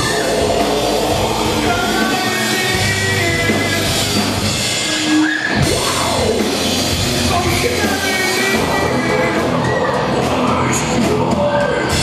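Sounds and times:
distorted electric guitars: 0.0 - 12.0
drum kit: 0.0 - 12.0.

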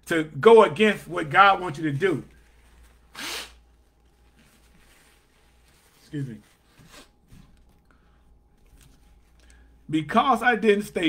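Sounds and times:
man sneezing: 3.1 - 3.6.

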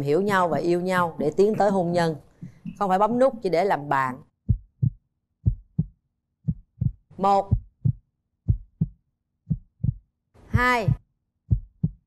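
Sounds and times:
heartbeat thumps: 2.3 - 2.8, 4.4 - 12.0.

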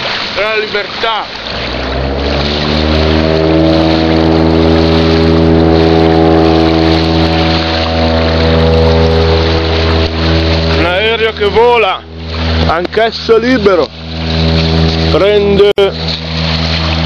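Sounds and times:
propeller plane engine droning: 0.0 - 17.0.

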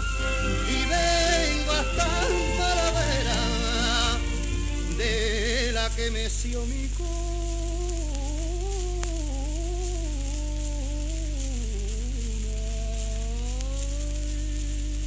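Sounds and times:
wordless melodic singing: 0.0 - 12.1
record crackle and hiss: 0.0 - 15.0
steady low hum: 0.0 - 15.0.

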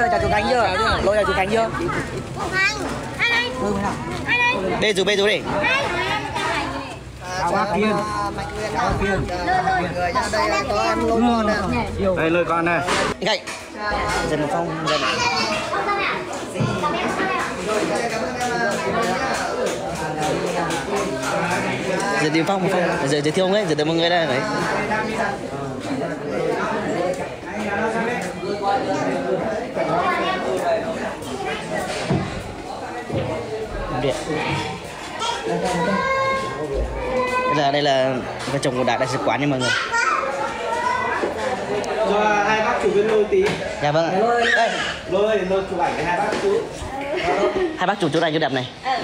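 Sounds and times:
crowd talking and calling out: 0.0 - 49.0.

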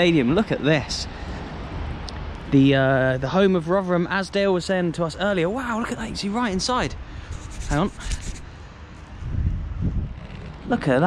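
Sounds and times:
wind buffeting microphone: 5.6 - 11.0.

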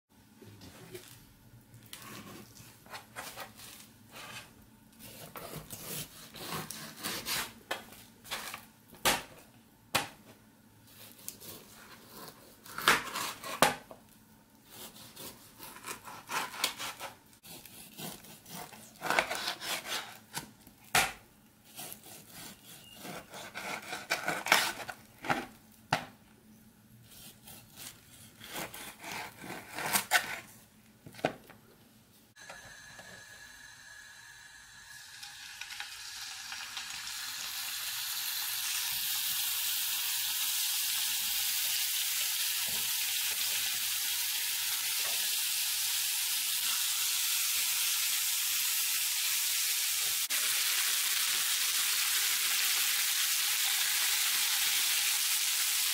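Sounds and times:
knife sawing through ribs: 5.0 - 7.5, 14.7 - 20.2, 21.6 - 24.8, 27.0 - 30.4
ribs sizzling in hot oil: 33.6 - 55.9.

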